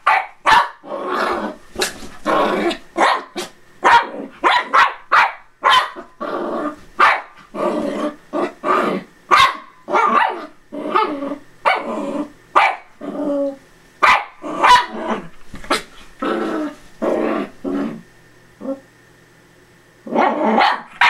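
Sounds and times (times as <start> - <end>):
small dogs barking: 0.0 - 0.9, 2.7 - 6.2, 7.0 - 7.5, 9.3 - 13.0, 14.0 - 15.9, 20.1 - 21.0
dogs growling: 0.8 - 4.4, 6.0 - 6.8, 7.4 - 9.1, 9.9 - 12.4, 13.0 - 13.6, 14.4 - 18.8.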